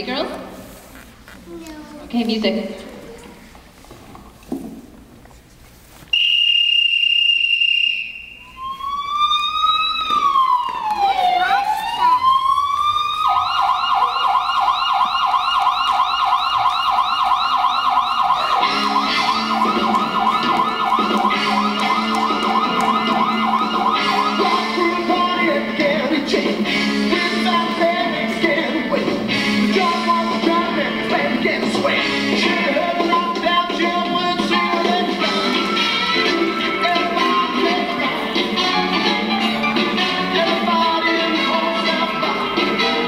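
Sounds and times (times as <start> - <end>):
police siren wailing: 8.4 - 25.8
music track: 18.4 - 26.0.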